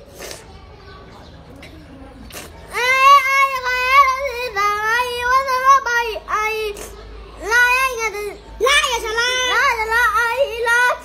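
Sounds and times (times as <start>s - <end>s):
young child singing: 2.7s - 11.0s.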